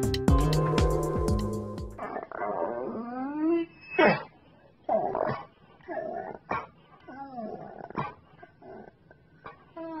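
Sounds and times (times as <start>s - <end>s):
dog crying: 2.0s - 4.4s.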